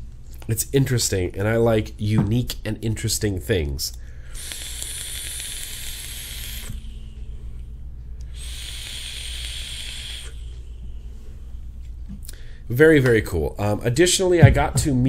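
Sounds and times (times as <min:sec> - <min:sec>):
hissing vapor drags: 0:04.3 - 0:11.8.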